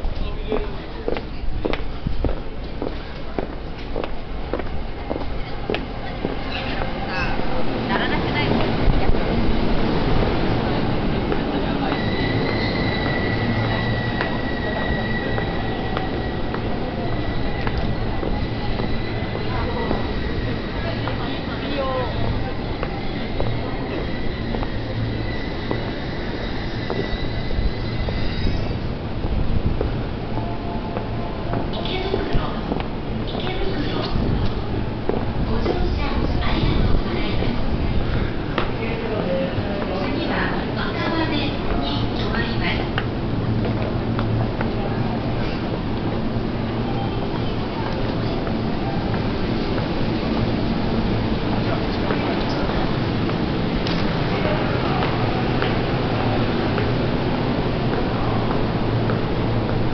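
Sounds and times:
murmur of passengers: 0.0s - 59.9s
train running: 0.0s - 59.9s.

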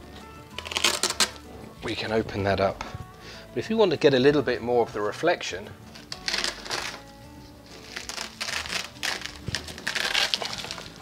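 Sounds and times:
crisp rustling of flap: 7.6s - 11.0s.

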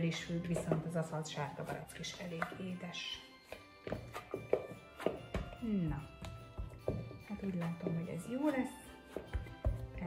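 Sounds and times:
dull thunks of dough kneading: 0.0s - 2.7s, 3.5s - 10.0s
soft background music: 0.0s - 10.0s.

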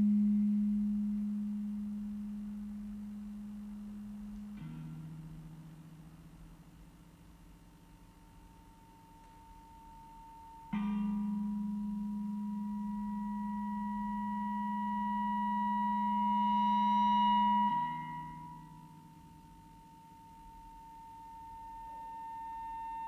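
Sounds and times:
sustained electric guitar drone: 0.0s - 6.4s, 10.7s - 23.0s.

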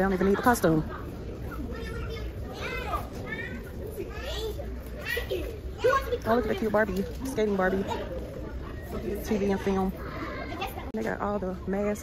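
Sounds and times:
child talking: 1.5s - 8.8s, 9.9s - 11.0s.

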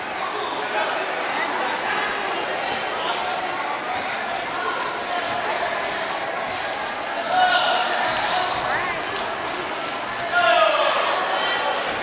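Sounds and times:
crowd chatter: 0.0s - 12.0s
loud yell: 10.3s - 11.6s.

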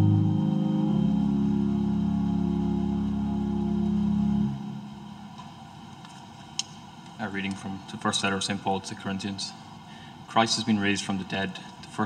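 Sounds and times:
held chord of church music: 0.0s - 5.4s.

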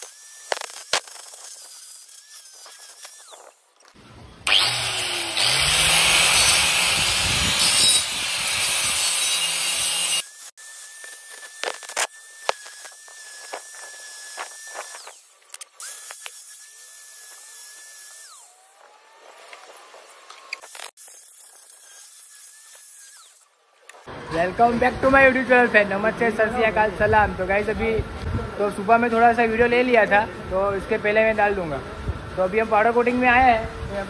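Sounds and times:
angle grinder grinding metal: 0.0s - 24.4s.

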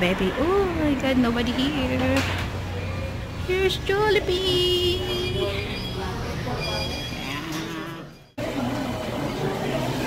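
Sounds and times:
restaurant room noise: 0.0s - 10.0s.

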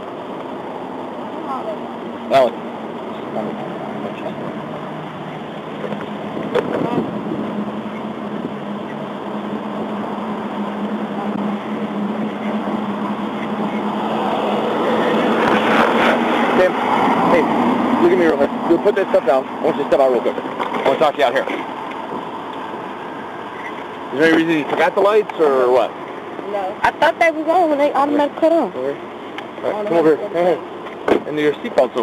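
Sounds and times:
car passing: 0.0s - 32.0s
road traffic noise: 0.0s - 32.0s
steady low hum: 0.0s - 32.0s.

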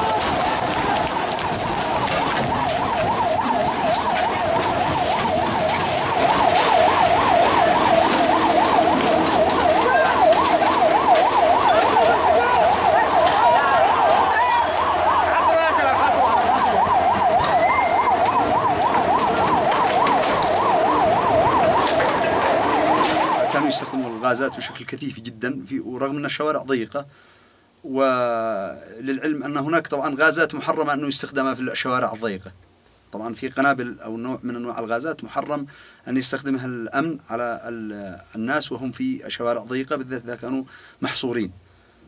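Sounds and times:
siren yelping warble: 0.0s - 24.9s
street noise: 0.0s - 25.2s.

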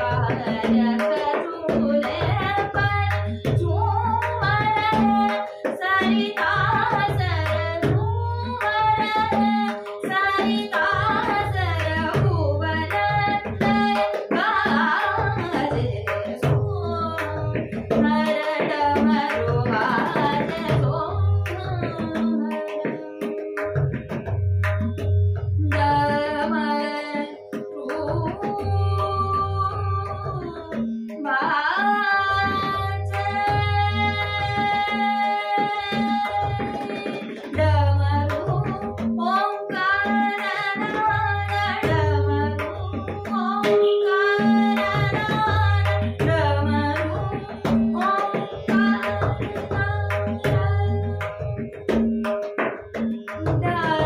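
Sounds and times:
woman singing: 0.0s - 23.7s, 25.6s - 54.0s
tabla drumming: 0.0s - 54.0s.

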